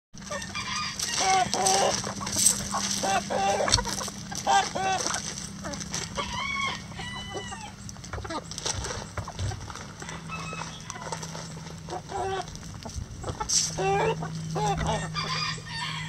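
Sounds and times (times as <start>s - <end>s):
hens clucking: 0.2s - 16.0s
hen long drawn-out call: 0.3s - 2.2s, 3.0s - 5.2s, 13.7s - 16.0s.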